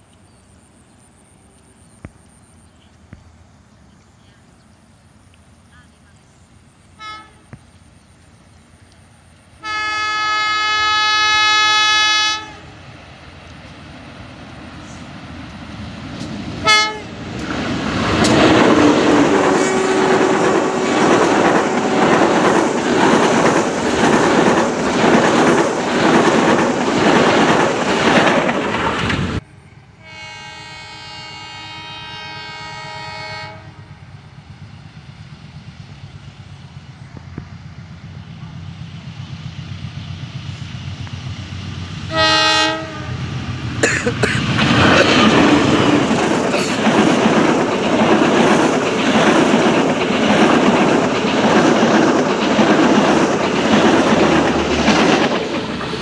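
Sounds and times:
low train rumble: 0.0s - 56.0s
train passing with wheel noise: 0.0s - 56.0s
diesel locomotive horn: 6.9s - 7.6s, 9.6s - 12.8s, 16.6s - 17.3s, 19.2s - 22.6s, 29.9s - 34.0s, 42.1s - 43.4s
distant train horn: 6.9s - 7.6s, 9.6s - 12.8s, 16.6s - 17.2s, 18.2s - 22.6s, 29.9s - 34.1s, 42.1s - 43.4s.

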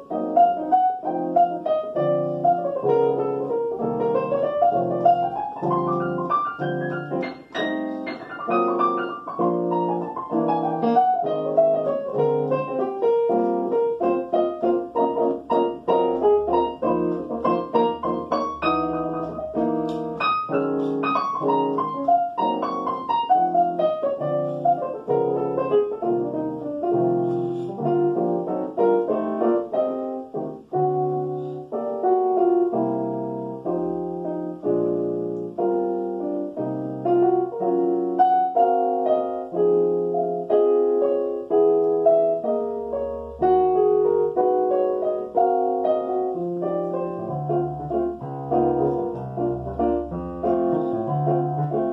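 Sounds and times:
jazz piano: 0.0s - 51.9s.

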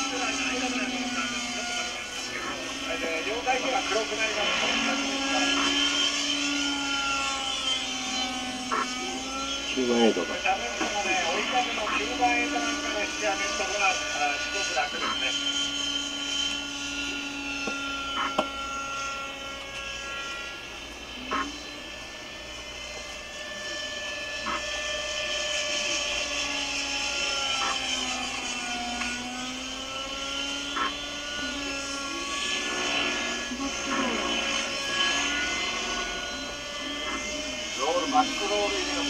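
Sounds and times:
model helicopter engine and rotors: 0.0s - 39.0s.

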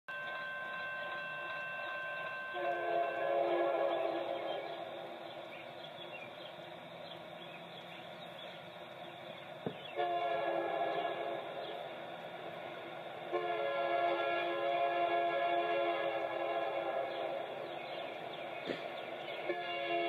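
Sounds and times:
faint steady tone: 0.1s - 20.0s
locomotive air horn: 1.1s - 5.2s, 9.9s - 11.8s, 13.3s - 17.6s, 19.4s - 20.0s.

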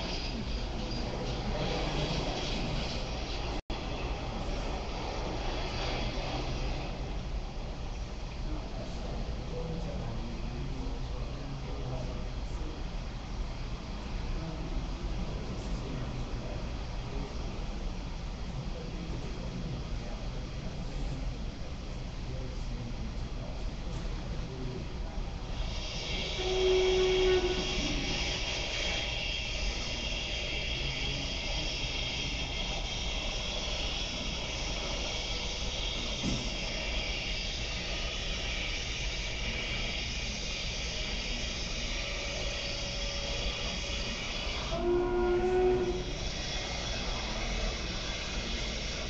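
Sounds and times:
train steady hiss: 0.0s - 49.0s
train horn blast: 25.9s - 28.8s, 44.2s - 47.0s.

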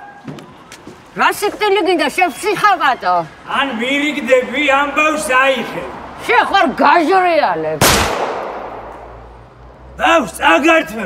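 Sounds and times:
loud sharp bang: 7.8s - 9.4s.

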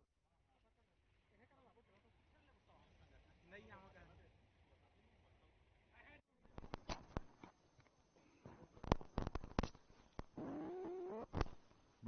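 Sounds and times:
microphone clicks: 6.5s - 7.5s, 8.5s - 11.8s.

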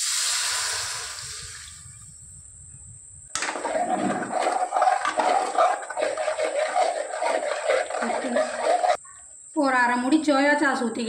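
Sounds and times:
gravy sloshing: 3.4s - 9.0s
ladle scraping metal pan: 3.4s - 9.0s.

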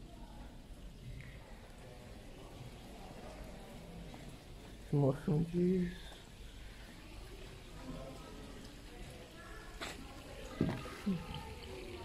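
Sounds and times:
water trickling: 0.0s - 12.0s.

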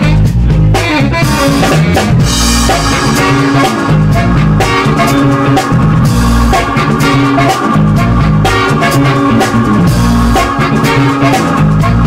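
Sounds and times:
funk band playing live: 0.0s - 12.0s.

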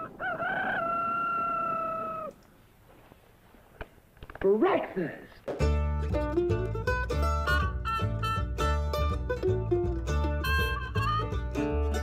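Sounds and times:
rooster crowing: 0.0s - 2.4s.

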